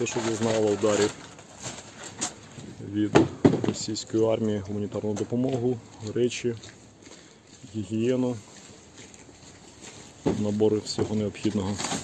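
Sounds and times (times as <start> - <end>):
light clicks of bags moved: 0.0 - 3.1, 3.8 - 12.0
faint handling noise: 0.0 - 12.0.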